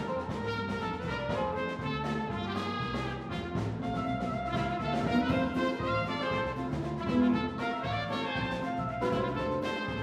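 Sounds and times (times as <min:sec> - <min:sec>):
jazz combo playing: 0:00.0 - 0:10.0
soprano saxophone solo: 0:00.2 - 0:10.0.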